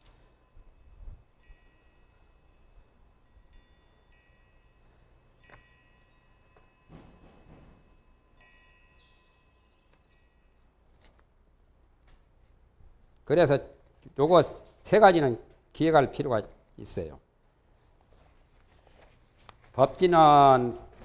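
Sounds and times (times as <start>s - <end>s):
faint high ringing tones: 0.0s - 11.1s
soft rustle: 17.4s - 20.1s.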